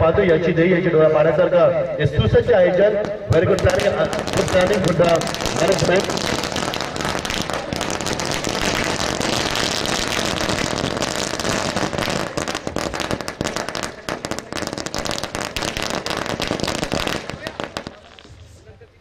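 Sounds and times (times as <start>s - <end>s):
firecrackers crackling: 2.4s - 19.0s.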